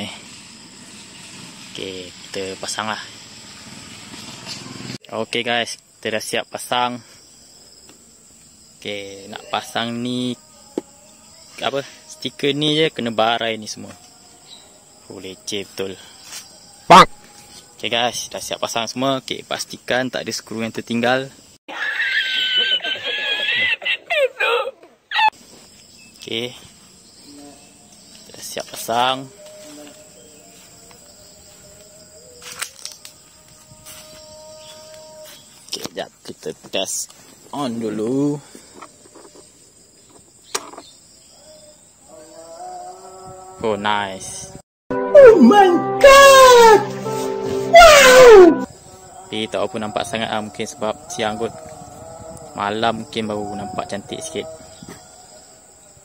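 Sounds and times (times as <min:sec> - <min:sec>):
high-pitched insect chirring: 0:05.7 - 0:20.7
man squealing laugh: 0:21.7 - 0:25.4.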